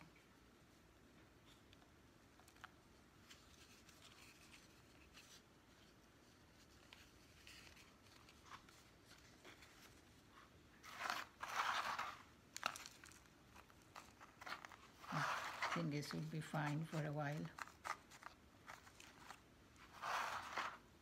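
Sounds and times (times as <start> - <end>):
faint scratching and ticking: 1.4 - 20.9
potting mix crunching and rustling: 6.6 - 21.0.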